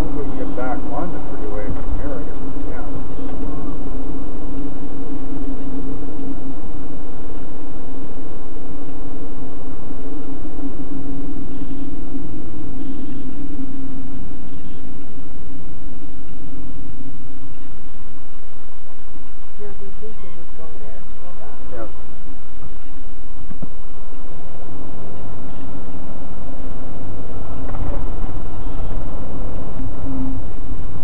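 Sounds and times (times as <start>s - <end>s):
car engine drone: 0.0s - 31.0s
high-pitched tones: 0.0s - 31.0s.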